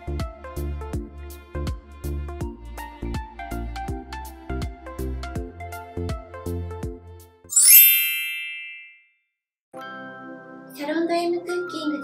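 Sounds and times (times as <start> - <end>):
shimmering bell-like chime: 7.5 - 9.0.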